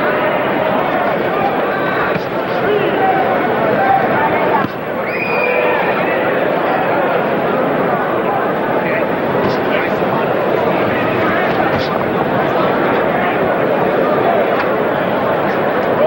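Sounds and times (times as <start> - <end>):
crowd din of voices: 0.0 - 16.0.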